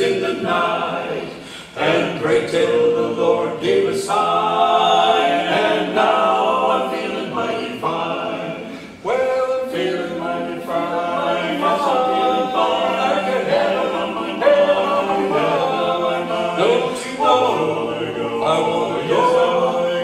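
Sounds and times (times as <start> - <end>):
male quartet singing a cappella: 0.0 - 20.0.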